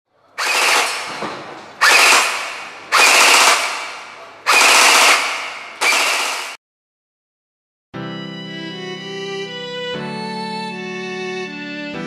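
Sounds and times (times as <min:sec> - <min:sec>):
airsoft gun firing bursts: 0:00.4 - 0:06.6.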